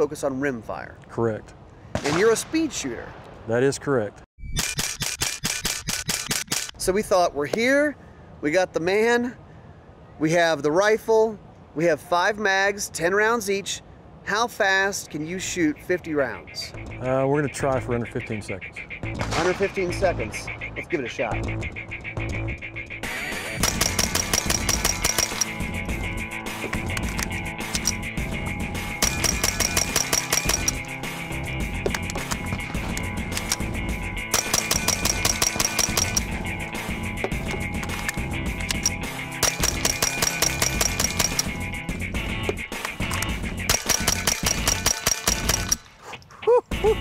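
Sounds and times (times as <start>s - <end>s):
background music: 16.5s - 45.9s, 46.7s - 47.0s
rifle rapid fire: 23.6s - 25.4s, 29.0s - 30.8s, 34.3s - 36.3s, 39.4s - 41.6s, 43.7s - 45.8s.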